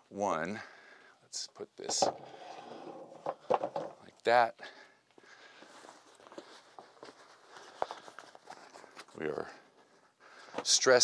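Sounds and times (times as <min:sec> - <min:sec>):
footsteps in sneakers: 0:05.1 - 0:08.0.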